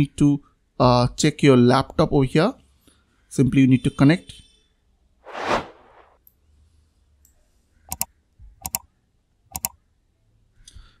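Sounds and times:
computer mouse clicks: 7.2 - 8.9, 9.5 - 9.8.

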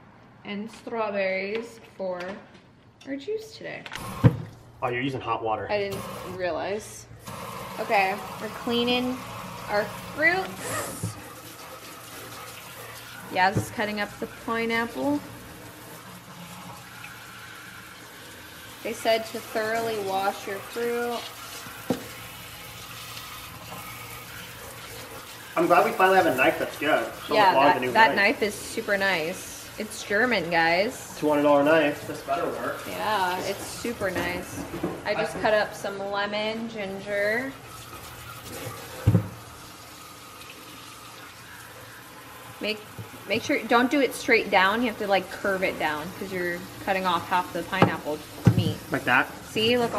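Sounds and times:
tap water running into sink: 5.9 - 6.4, 7.2 - 35.9, 37.1 - 49.9
tap running into metal sink: 13.4 - 14.3, 21.6 - 22.4, 38.5 - 39.5, 47.6 - 49.0
dull thump: 39.0 - 39.4.

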